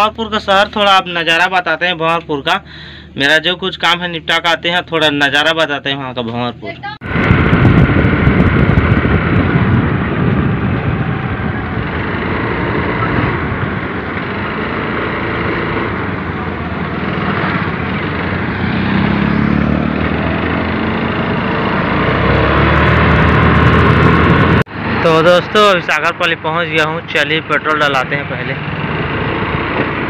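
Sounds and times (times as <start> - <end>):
wind noise on microphone: 7.0 - 24.7
scooter engine drone: 7.0 - 30.0.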